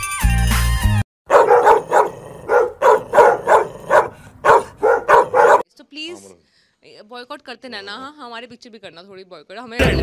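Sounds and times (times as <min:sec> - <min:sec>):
dog barking: 0:01.3 - 0:05.6.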